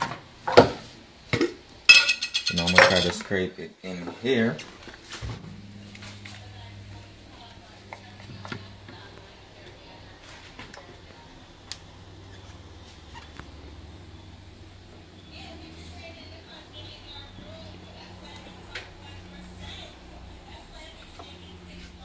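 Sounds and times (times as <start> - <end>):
steady low hum: 1.0 - 22.0.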